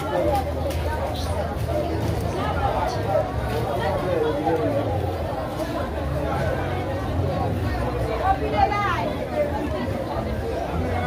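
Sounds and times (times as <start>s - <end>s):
people talking and chattering: 0.0s - 11.0s.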